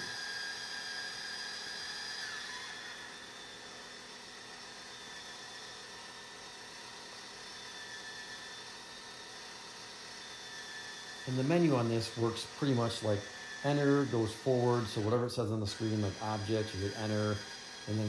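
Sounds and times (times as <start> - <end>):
telescope drive motors whining: 0.0 - 18.0.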